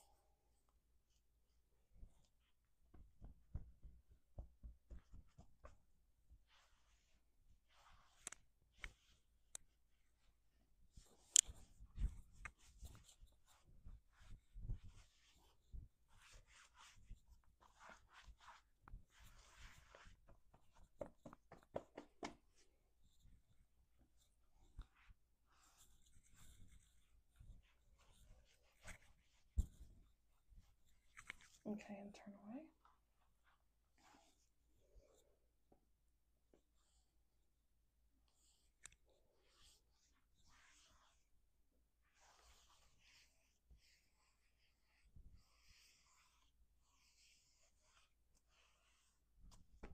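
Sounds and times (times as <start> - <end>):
hands rustling over shirt: 1.9 - 31.6, 42.0 - 49.9.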